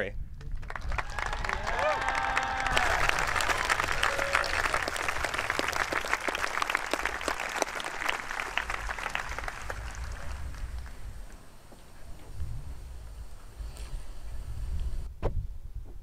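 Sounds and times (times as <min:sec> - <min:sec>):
audience applauding: 0:00.6 - 0:11.1.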